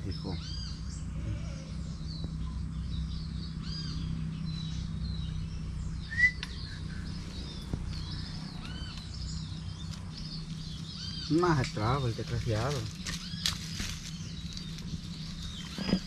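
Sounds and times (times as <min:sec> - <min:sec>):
birds chirping: 0:00.0 - 0:16.0
low background rumble: 0:00.0 - 0:16.0.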